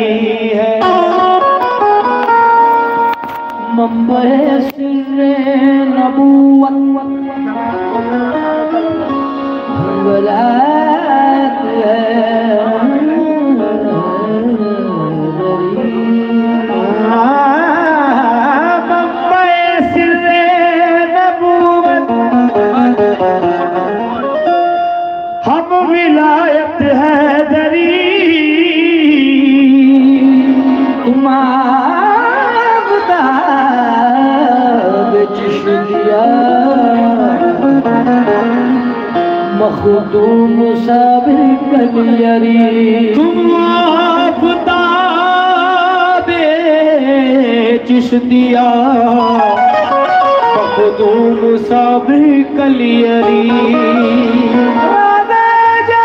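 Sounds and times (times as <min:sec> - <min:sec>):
harmonium playing: 0:00.0 - 0:56.0.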